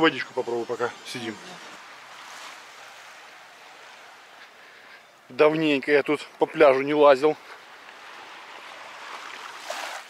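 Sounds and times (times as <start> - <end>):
small waves washing on sand: 0.0 - 4.7, 7.1 - 10.0.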